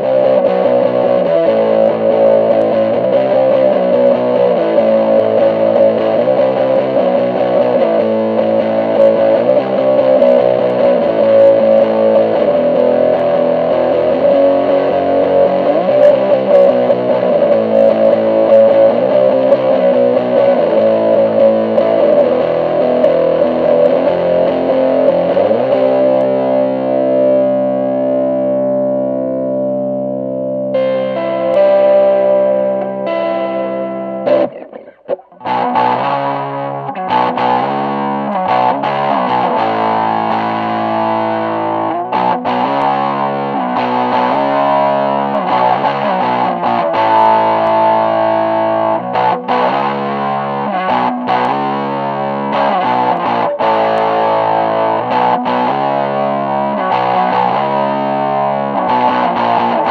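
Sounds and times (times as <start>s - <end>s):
overdriven electric guitar chords: 0.0s - 59.9s.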